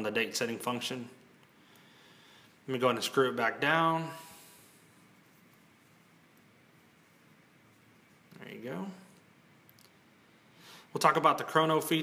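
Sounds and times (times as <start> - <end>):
man speaking: 0.0 - 1.2, 2.7 - 4.4, 8.3 - 9.2, 10.9 - 12.0
faint room hiss: 0.0 - 12.0.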